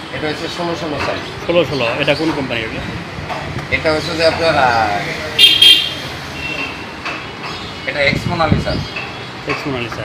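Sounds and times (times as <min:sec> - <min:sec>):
low hum of traffic: 0:00.0 - 0:10.0.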